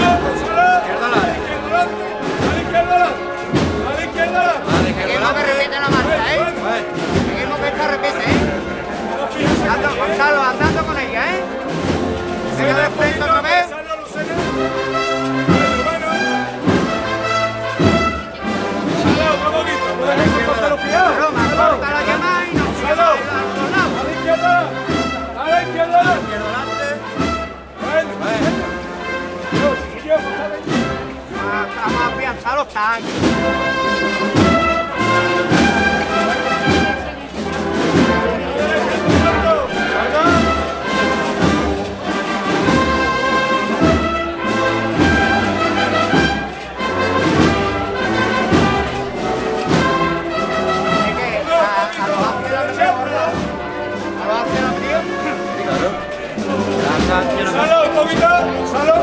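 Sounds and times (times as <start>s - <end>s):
brass melody: 0.0s - 59.0s
steady drum beat: 0.0s - 59.0s
wind band playing a march: 0.0s - 59.0s.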